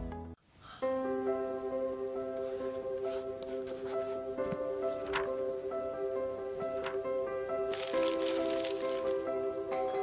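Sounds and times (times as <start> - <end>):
soft sustained background music: 0.0 - 10.0
pencil scratching on paper: 2.4 - 4.3
paper sheets rustling: 2.5 - 5.5, 6.6 - 9.3.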